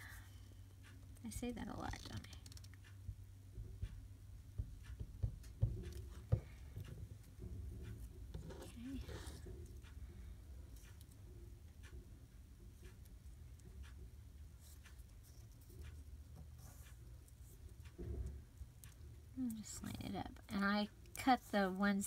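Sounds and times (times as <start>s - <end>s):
low steady hum: 0.0s - 22.0s
light knocks and clicks: 2.2s - 10.0s.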